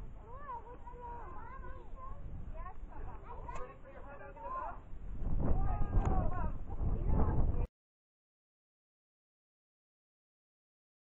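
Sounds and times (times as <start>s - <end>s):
children calling and chattering: 0.0s - 7.7s
wind on microphone: 0.0s - 7.7s.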